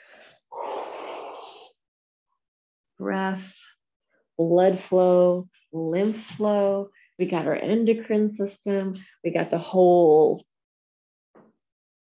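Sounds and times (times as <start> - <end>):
woman breathing: 0.0 - 1.7.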